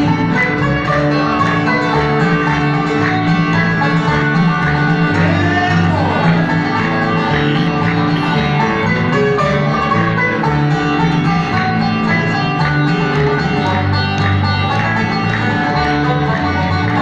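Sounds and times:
bluegrass band playing: 0:00.0 - 0:17.0
plucked upright bass: 0:00.0 - 0:17.0.

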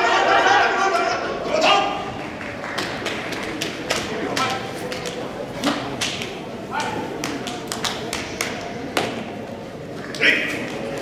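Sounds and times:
voices in a large hall: 0:00.0 - 0:11.0
sharp hand slaps: 0:03.6 - 0:09.2.

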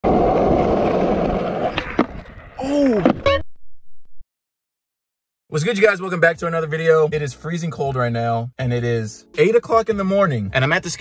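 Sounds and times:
skateboard wheels rolling on concrete: 0:00.0 - 0:03.2.

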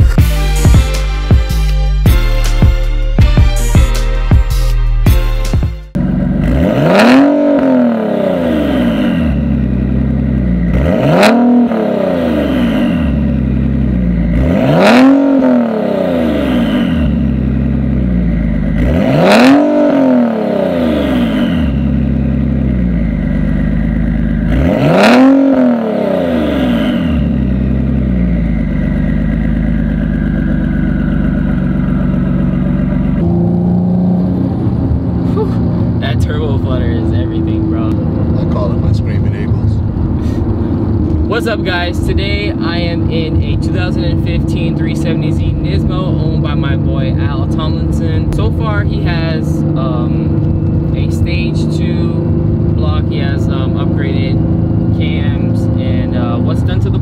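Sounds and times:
car engine idling and revving: 0:00.0 - 0:57.0.

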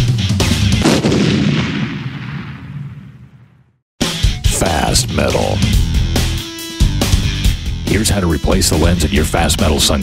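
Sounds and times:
loud booming impact: 0:00.8 - 0:03.7.

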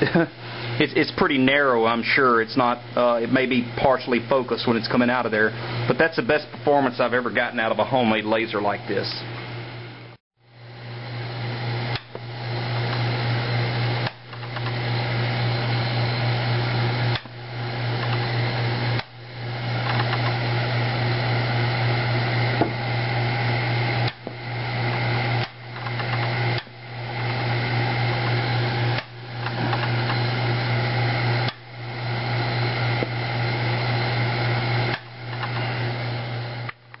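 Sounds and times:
laser electrical hum and buzz: 0:00.0 - 0:37.0.

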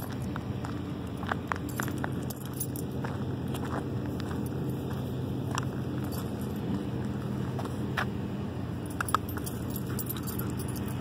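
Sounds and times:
metallic jingling and clinking: 0:00.0 - 0:07.9, 0:08.7 - 0:11.0
walking steps: 0:00.0 - 0:08.2
steady low rumble: 0:00.0 - 0:11.0.

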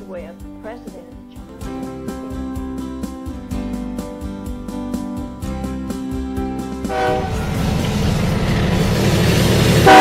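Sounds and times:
train horn: 0:06.8 - 0:07.8, 0:09.7 - 0:10.0
train rumbling on rails: 0:06.8 - 0:10.0.

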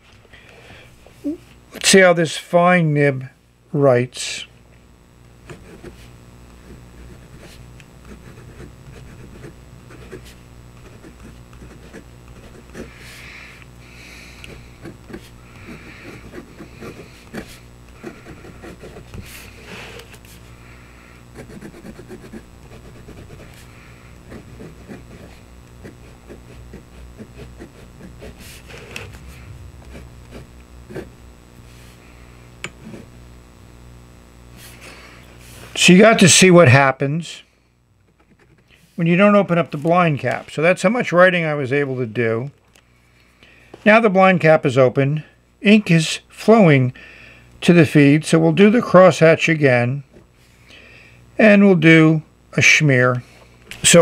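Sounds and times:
low hum: 0:03.4 - 0:38.2
pen nib scratching on paper: 0:05.4 - 0:13.2, 0:14.3 - 0:20.4, 0:21.3 - 0:31.9.

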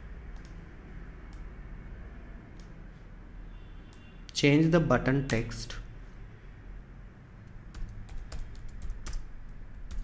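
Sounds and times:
keyboard typing clicks: 0:00.3 - 0:00.6, 0:07.4 - 0:10.0.

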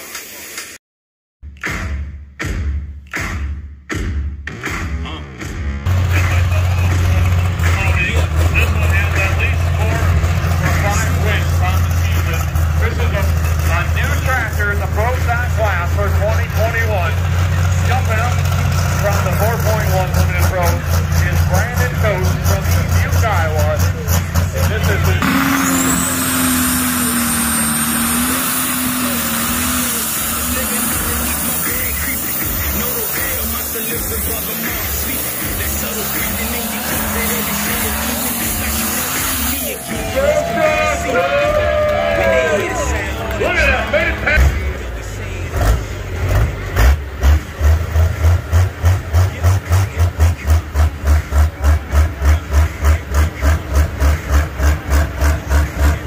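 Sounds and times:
high engine whine: 0:05.8 - 0:56.0
truck engine under load: 0:05.8 - 0:56.0
tractor engine running hard: 0:05.9 - 0:56.0.

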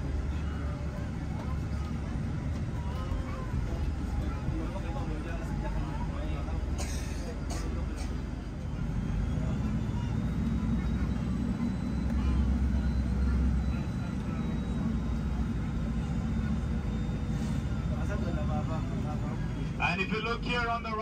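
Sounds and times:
minibus engine from inside: 0:00.0 - 0:21.0
road rumble: 0:00.0 - 0:21.0.

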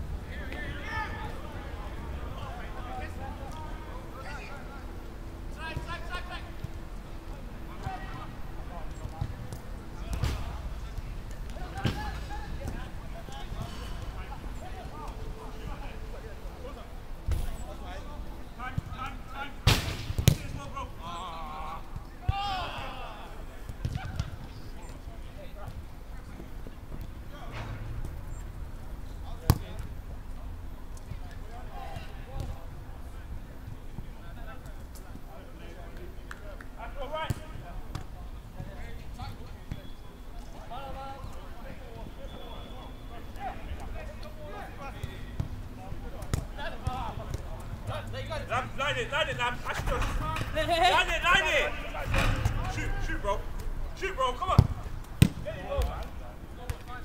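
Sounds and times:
distant players shouting: 0:20.6 - 0:24.4, 0:46.5 - 0:55.9
distant players calling out: 0:20.6 - 0:25.0.

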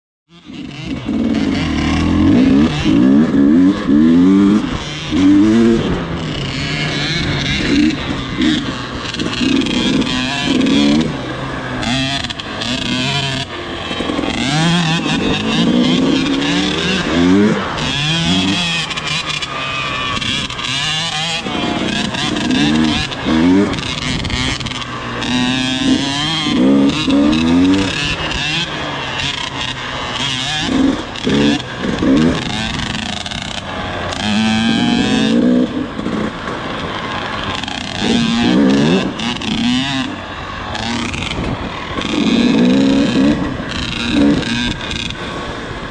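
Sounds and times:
dirt bike engine revving: 0:00.3 - 0:45.9
wind noise: 0:21.4 - 0:28.5, 0:34.0 - 0:45.9.

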